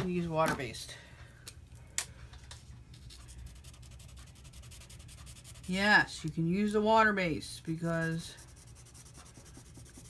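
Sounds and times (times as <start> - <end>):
marker scratching on cardstock: 3.3 - 6.2, 7.8 - 10.0.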